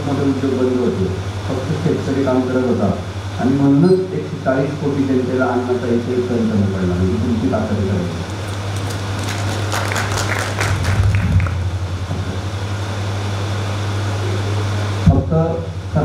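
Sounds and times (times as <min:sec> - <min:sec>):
electrical hum through speakers: 0:00.0 - 0:16.0
man speaking over loudspeaker: 0:15.0 - 0:16.0.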